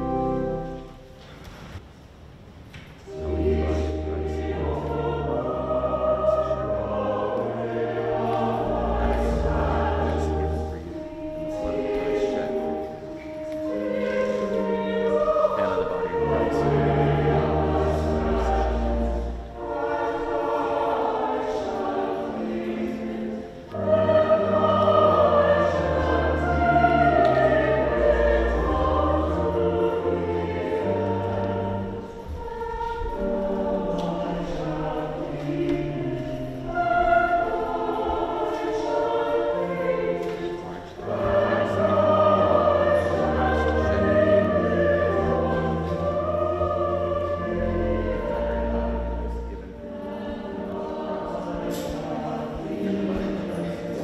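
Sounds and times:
pipe organ bass notes: 0.0s - 1.1s, 3.1s - 53.9s
choir singing: 0.0s - 1.8s, 3.0s - 54.0s.

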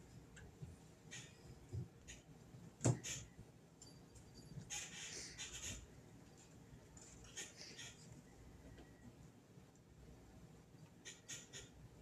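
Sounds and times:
low background noise: 0.0s - 12.0s.

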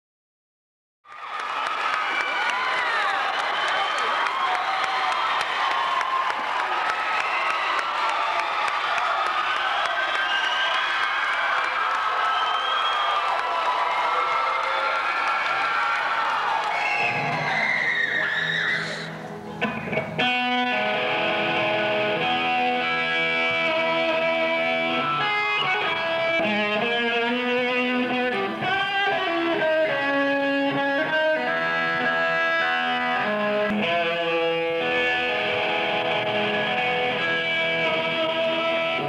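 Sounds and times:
crowd cheering and yelling: 1.1s - 39.0s
electric guitar low notes: 19.4s - 39.0s.

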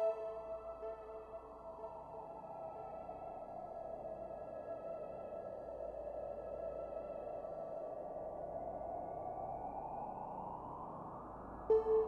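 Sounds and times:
soft synthesizer drone: 0.0s - 7.5s, 11.4s - 12.0s.

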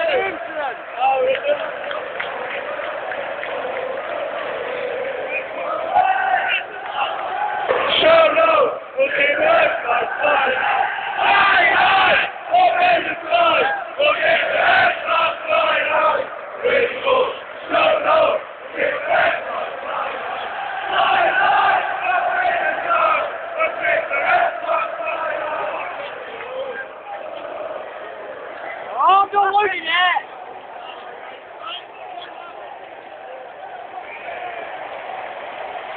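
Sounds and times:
crowd chanting and singing: 0.0s - 35.9s.

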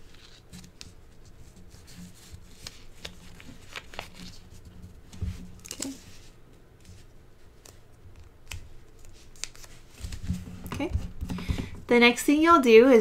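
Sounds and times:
paper rustling and creasing: 0.0s - 11.4s.

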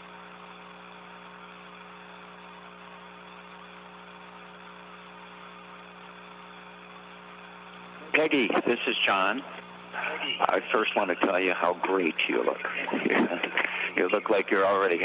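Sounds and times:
fixed hum tones: 0.0s - 15.0s
even hiss: 5.4s - 15.0s.

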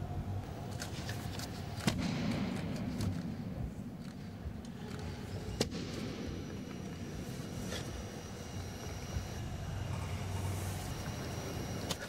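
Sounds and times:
low rumble of room ambience: 0.0s - 12.0s.

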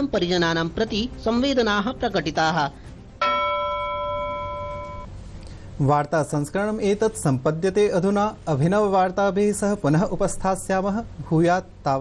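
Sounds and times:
bell chime ringing: 3.2s - 5.1s.

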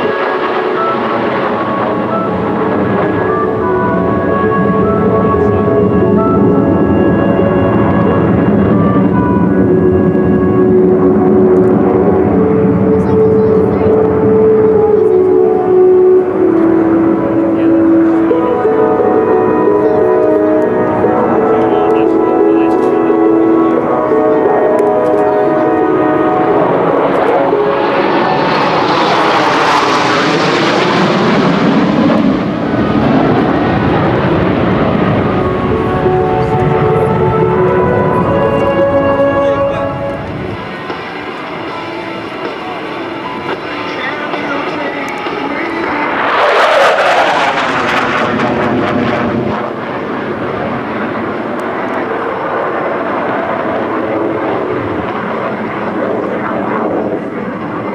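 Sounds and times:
fighter jets passing overhead: 0.0s - 57.9s.

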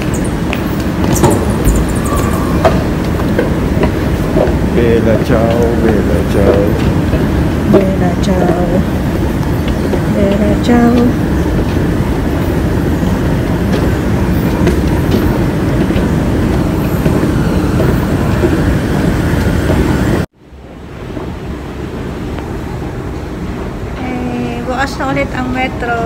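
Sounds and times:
loud rumbling in station: 0.0s - 26.0s.

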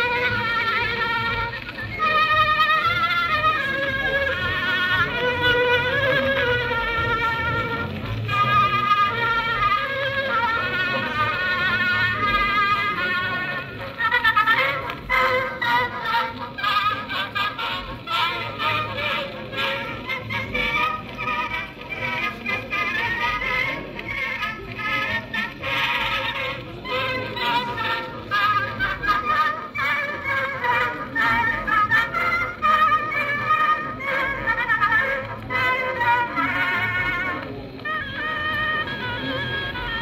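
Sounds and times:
phonograph playing old music recording: 0.0s - 40.0s.

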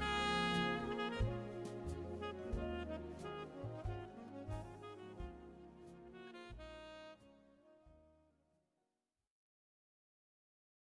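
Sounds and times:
smooth jazz instrumental music: 0.0s - 8.4s.

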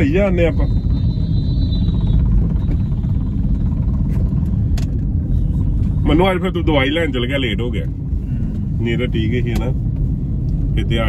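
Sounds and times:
faint high whine: 0.0s - 4.6s
car road and engine rumble: 0.0s - 11.0s.

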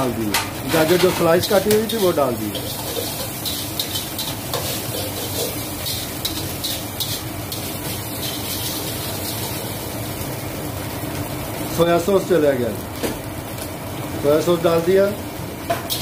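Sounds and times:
rice sizzling in a wok: 0.0s - 16.0s
ladle scraping against wok: 0.6s - 9.7s.

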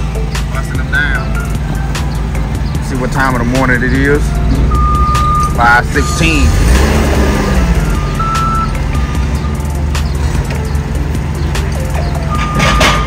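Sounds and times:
forklift engine drone: 0.0s - 13.0s
forklift backup beep: 4.3s - 10.0s, 12.2s - 13.0s.

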